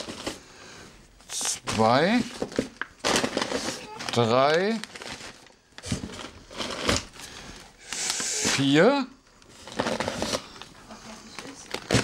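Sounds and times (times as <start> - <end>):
paper bags rustling: 1.3 - 12.0.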